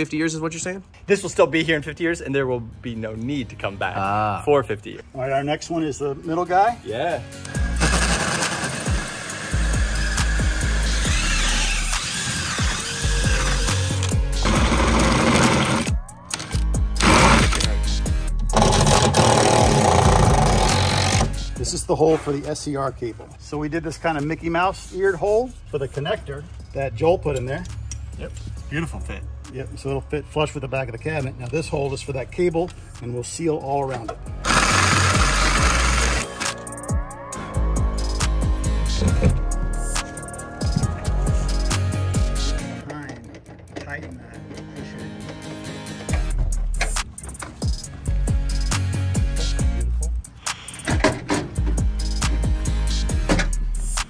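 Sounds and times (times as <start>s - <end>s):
background music: 0.0s - 54.0s
drill with hole saw cutting metal: 7.5s - 15.9s, 17.0s - 17.7s, 18.5s - 21.4s, 34.4s - 36.5s.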